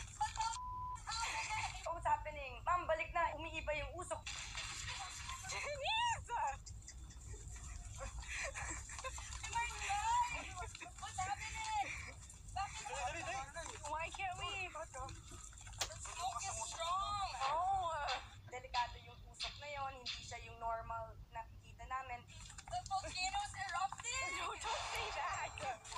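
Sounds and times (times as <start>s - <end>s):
excited voices calling out: 5.6s - 6.6s.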